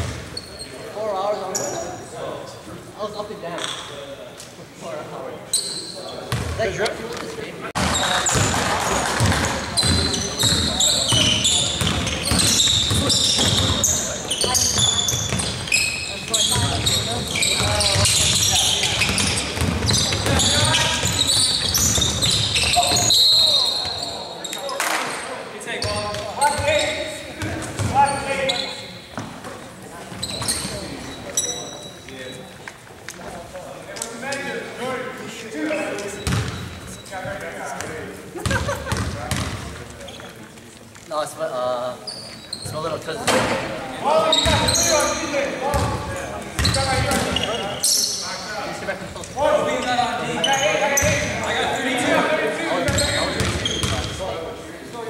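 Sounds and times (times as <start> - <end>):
sneakers squeaking: 0.0 - 2.1, 5.5 - 7.1, 7.8 - 34.6, 35.6 - 54.9
basketball bouncing: 7.8 - 15.7, 16.4 - 23.0, 36.2 - 36.6, 38.4 - 39.6.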